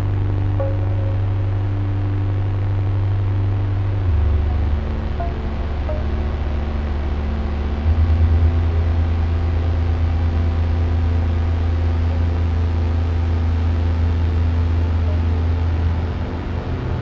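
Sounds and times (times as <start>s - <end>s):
ambient drone music: 0.0s - 17.0s.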